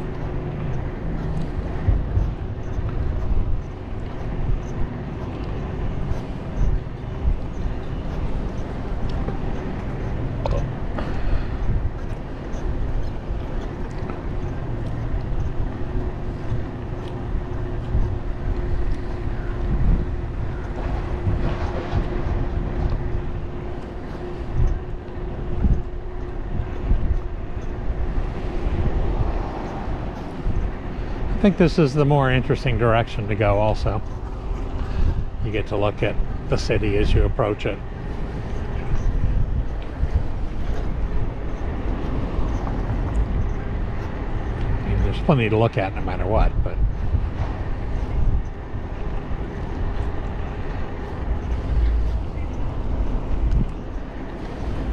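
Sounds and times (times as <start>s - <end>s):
road and traffic noise: 0.0s - 54.9s
wind buffeting microphone: 0.0s - 54.9s.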